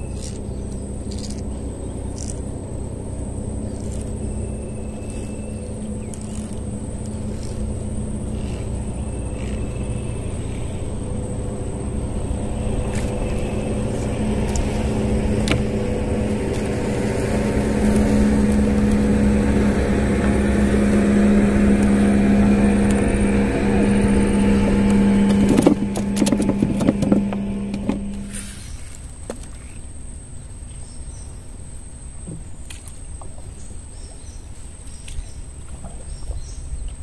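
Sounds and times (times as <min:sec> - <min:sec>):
boat engine running: 0:00.0 - 0:29.8, 0:32.3 - 0:37.0
sharp knocks and clatter: 0:25.2 - 0:28.2.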